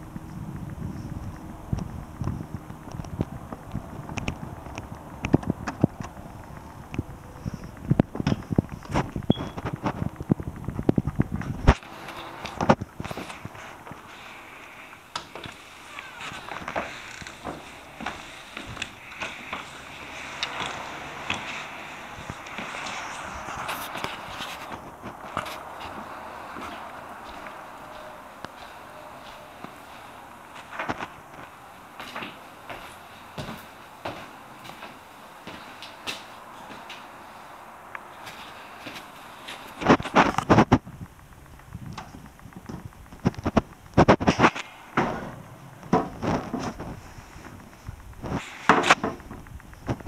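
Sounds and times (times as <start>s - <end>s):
footsteps: 0.0s - 50.0s.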